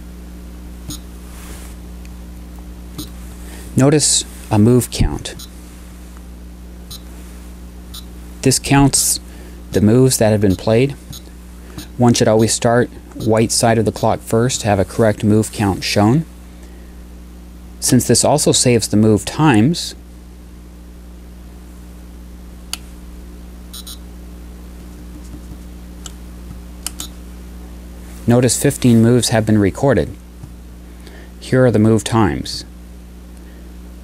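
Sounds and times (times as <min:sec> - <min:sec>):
low electrical hum: 0:00.0 - 0:34.0.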